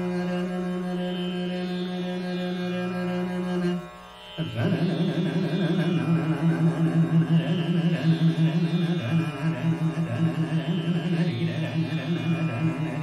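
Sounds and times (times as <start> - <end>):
tanpura drone: 0.0 - 13.0
man singing wavering notes: 4.4 - 13.0.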